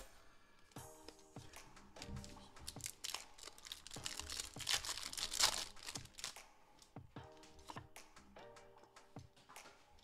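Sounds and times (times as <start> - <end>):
foil wrapper crinkling and tearing: 2.0 - 6.4.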